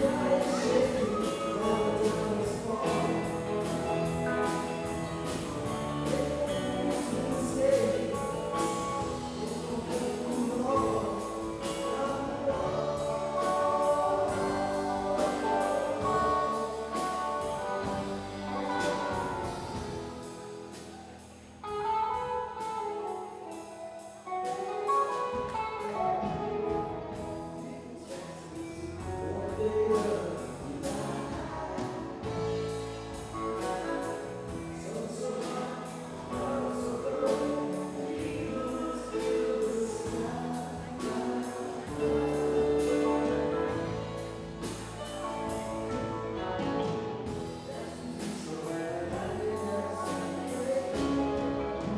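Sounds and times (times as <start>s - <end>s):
live band playing instrumental: 0.0s - 51.9s
person singing: 0.0s - 51.9s.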